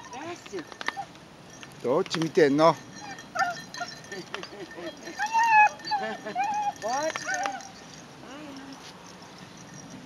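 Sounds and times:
dog whining and yipping: 0.0 - 1.2, 2.9 - 8.0.

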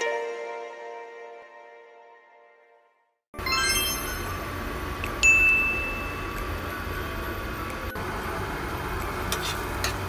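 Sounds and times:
high bell-like tone: 3.4 - 4.6, 5.2 - 6.6.

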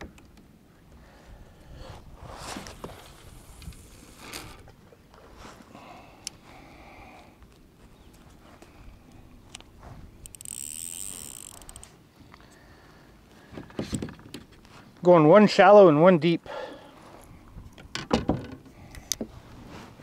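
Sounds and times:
rod and reel handling clicks: 3.4 - 4.6, 8.6 - 12.5
reel ratcheting whirr: 9.5 - 11.9.

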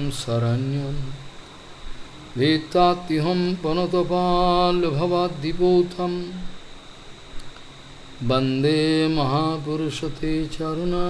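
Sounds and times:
man chanting a prayer: 0.0 - 1.3, 2.4 - 6.6, 8.2 - 11.0.

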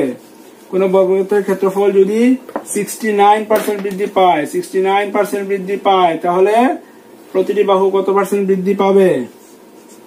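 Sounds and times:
man speaking: 0.0 - 9.4.

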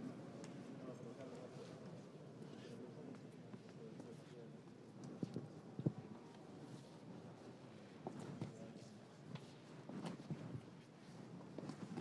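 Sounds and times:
murmur of people: 0.0 - 11.5.

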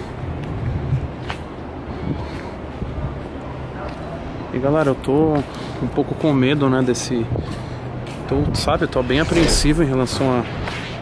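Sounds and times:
city background rumble: 0.0 - 11.0.

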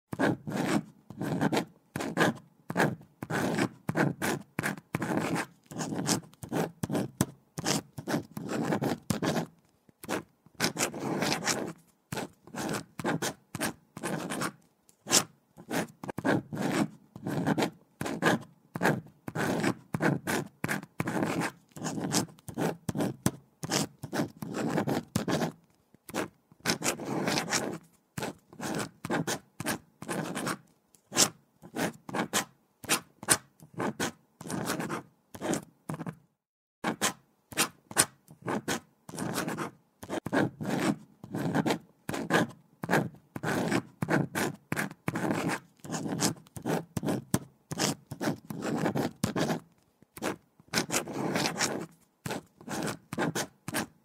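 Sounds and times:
pen scratching on paper: 0.1 - 36.2, 36.8 - 54.0.

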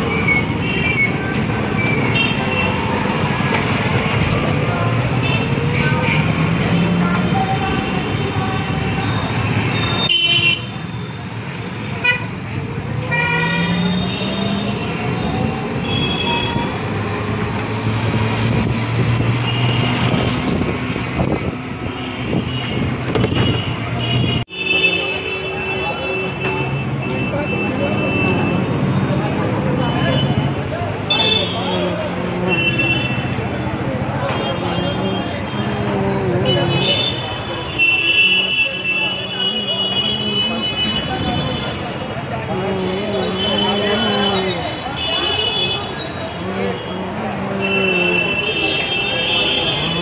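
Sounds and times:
engines rumbling: 0.0 - 50.0
voices: 24.7 - 50.0.

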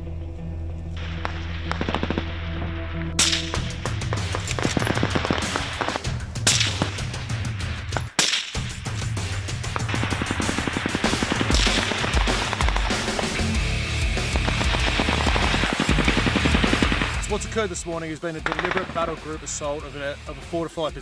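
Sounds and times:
rapid gunfire: 1.2 - 2.3, 3.2 - 7.4, 9.5 - 17.5, 18.4 - 19.4
music track: 8.8 - 21.0.

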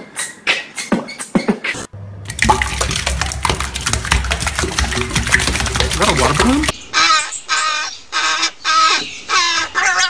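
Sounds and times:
tap water splashing on hands: 2.2 - 6.7.

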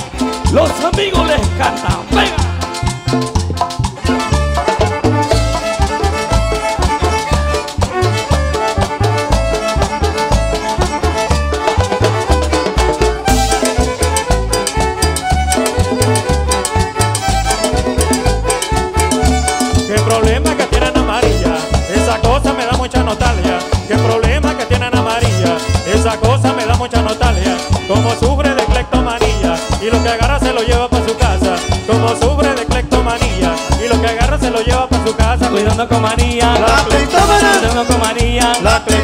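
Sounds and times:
live band playing dance song: 0.0 - 39.0
pulsing bass beat: 0.0 - 39.0.

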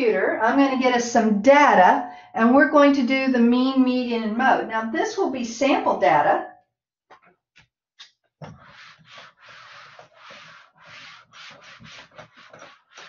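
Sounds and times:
eraser rubbing whiteboard: 8.4 - 13.0
eraser tapping board: 8.4 - 13.0.

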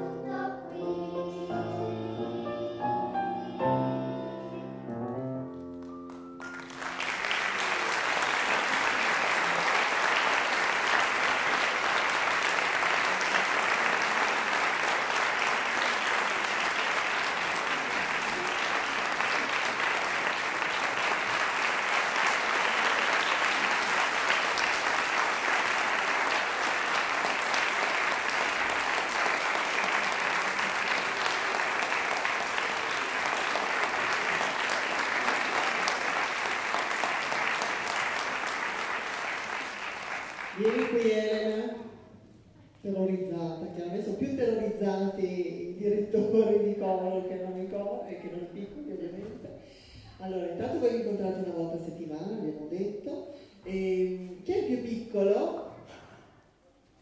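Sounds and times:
audience applauding: 5.5 - 41.5.

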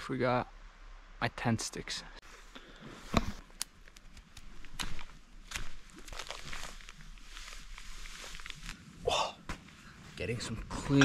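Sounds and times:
sharp cracks and knocks: 3.1 - 6.9
footsteps on forest floor: 3.1 - 8.9.

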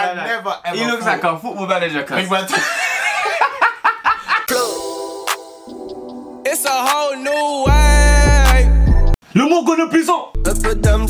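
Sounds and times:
men laughing: 2.4 - 4.5.

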